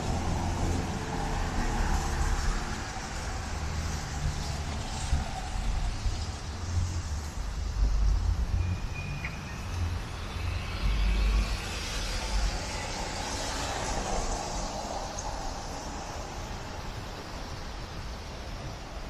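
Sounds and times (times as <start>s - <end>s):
vehicle passing: 0.0s - 17.1s
wind gusting on microphone: 0.0s - 19.0s.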